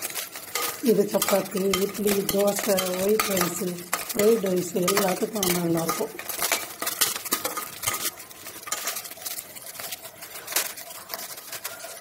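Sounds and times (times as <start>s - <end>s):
metal spatula scraping a pot: 0.0s - 12.0s.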